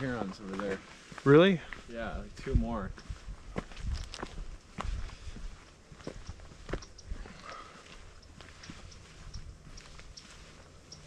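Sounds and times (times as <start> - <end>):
footsteps on sandy dirt trail: 0.0 - 11.0.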